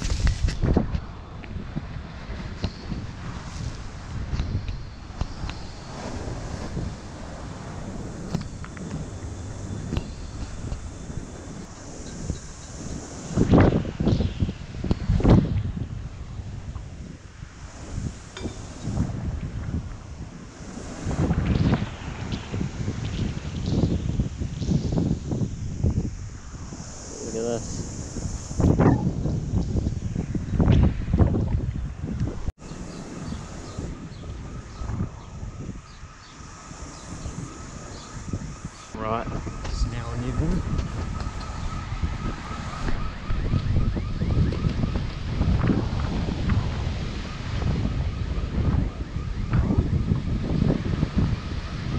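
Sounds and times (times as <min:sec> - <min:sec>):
rough surf: 0:00.0 - 0:51.9
storm wind buffeting microphone: 0:00.0 - 0:51.9.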